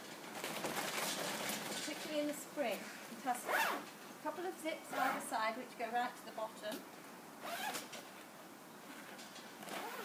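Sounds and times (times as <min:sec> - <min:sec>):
woman talking: 0:01.9 - 0:03.5, 0:04.2 - 0:06.9
plastic cover zip being pulled: 0:07.4 - 0:08.0, 0:09.6 - 0:10.0.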